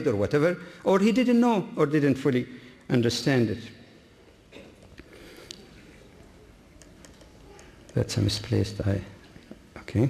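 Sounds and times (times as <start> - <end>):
computer keys clicking: 6.8 - 8.0.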